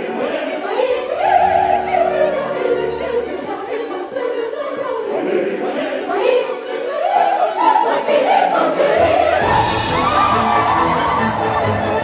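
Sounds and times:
opera chorus singing: 0:00.0 - 0:12.0
orchestra playing: 0:09.4 - 0:12.0.

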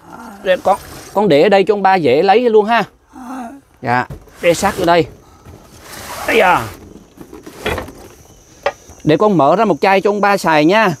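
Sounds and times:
scraping rustle: 0:04.0 - 0:09.0
cardboard case sliding on wooden floor: 0:04.2 - 0:08.2.

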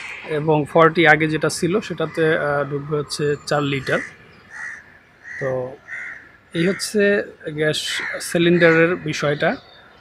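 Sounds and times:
crow cawing: 0:00.0 - 0:00.6, 0:01.6 - 0:10.0.

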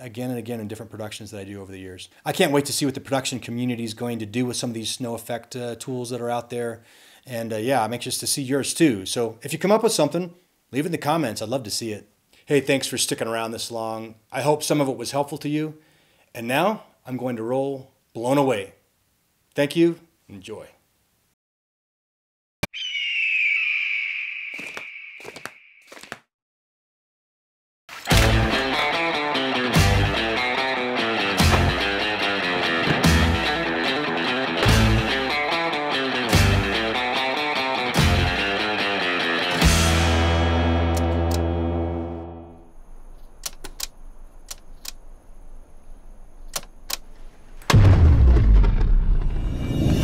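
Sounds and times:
hissing whoosh with falling whistle: 0:22.7 - 0:25.8
sharp crack: 0:28.0 - 0:29.1, 0:42.7 - 0:49.7
distorted electric guitar chord: 0:28.3 - 0:42.7
short clicks: 0:43.1 - 0:45.0, 0:46.4 - 0:47.2.

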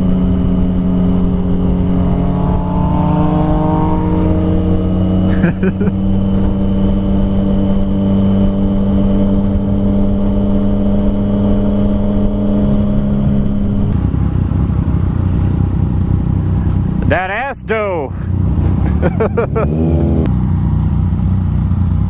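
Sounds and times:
motorcycle engine: 0:00.0 - 0:22.0
person laughing: 0:05.3 - 0:06.1, 0:18.6 - 0:19.9.

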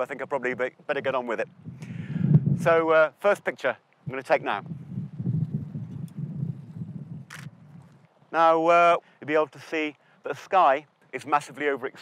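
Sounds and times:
wind buffeting microphone: 0:00.0 - 0:03.1, 0:04.0 - 0:08.3.

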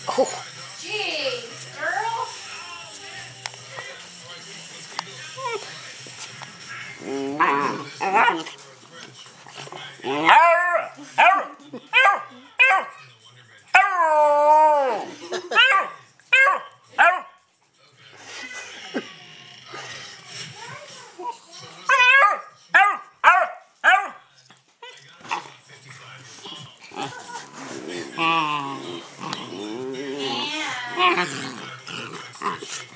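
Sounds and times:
puppy howling: 0:10.1 - 0:11.4, 0:13.7 - 0:15.1.

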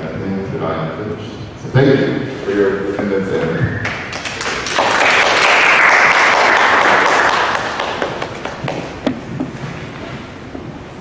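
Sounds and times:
audience applauding: 0:03.8 - 0:08.9.

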